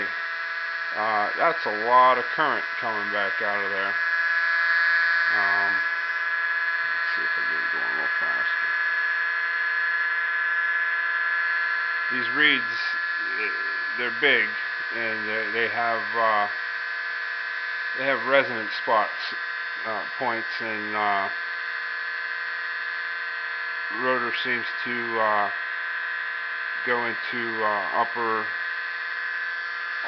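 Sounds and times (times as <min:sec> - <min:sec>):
electric motor buzzing whine: 0:00.0 - 0:30.0.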